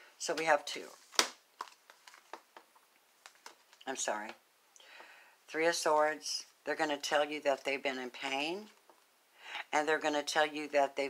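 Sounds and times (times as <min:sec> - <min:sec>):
cards clicking and rustling: 0:01.0 - 0:03.8.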